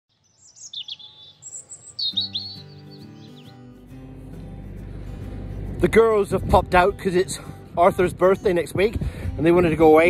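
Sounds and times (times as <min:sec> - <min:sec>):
birds chirping: 0:00.1 - 0:03.9
soft sustained music chords: 0:01.0 - 0:10.0.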